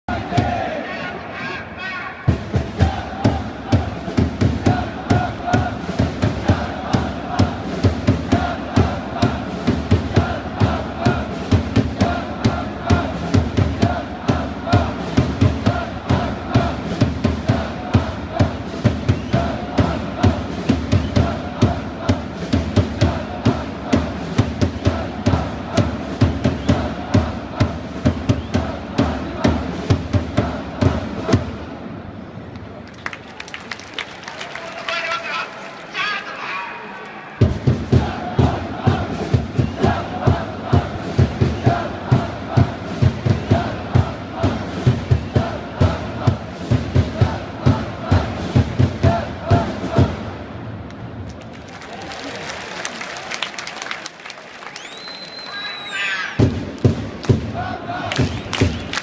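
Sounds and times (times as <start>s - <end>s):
crowd chanting in unison: 0.0s - 32.1s, 35.0s - 50.8s, 56.0s - 59.0s
cheering drum beat: 0.1s - 1.0s, 1.9s - 31.6s, 33.1s - 36.6s, 37.2s - 50.5s, 51.4s - 59.0s
crowd noise: 0.1s - 59.0s.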